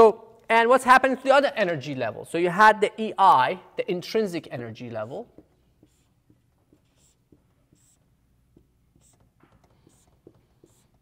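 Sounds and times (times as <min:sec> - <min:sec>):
marker ticking on a whiteboard: 0:05.0 - 0:11.0.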